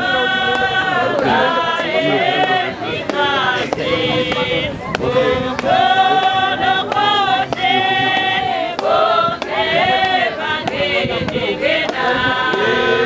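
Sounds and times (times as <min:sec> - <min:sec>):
congregation singing a hymn: 0:00.0 - 0:13.0
regular sharp beat: 0:00.1 - 0:13.0.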